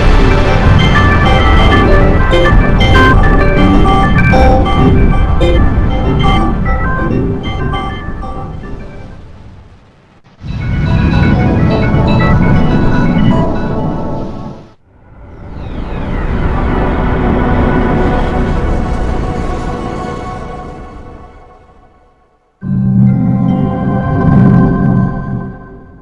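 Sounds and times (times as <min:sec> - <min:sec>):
organ-like chime tones: 0:00.0 - 0:09.1
distorted electronic chime notes: 0:00.0 - 0:09.2, 0:10.4 - 0:14.2, 0:22.6 - 0:26.0
heavy low rumble: 0:00.0 - 0:26.0.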